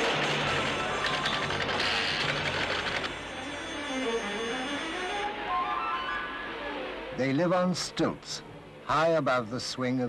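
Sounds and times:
background music: 0.0 - 9.9.

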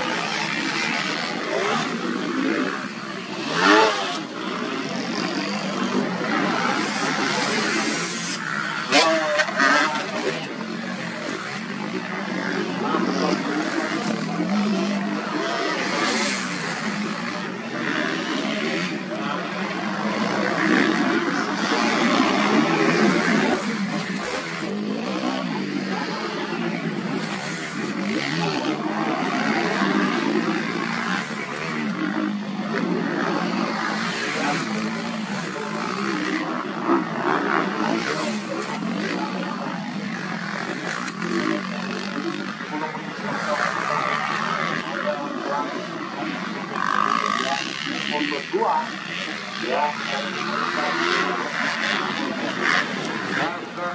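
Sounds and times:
motocross bike engines revving: 0.0 - 53.9
people's voices: 0.0 - 53.9.

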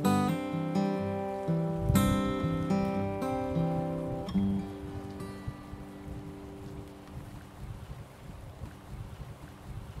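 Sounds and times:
acoustic guitar chord ringing: 0.0 - 6.8
wind buffeting microphone: 1.1 - 10.0.

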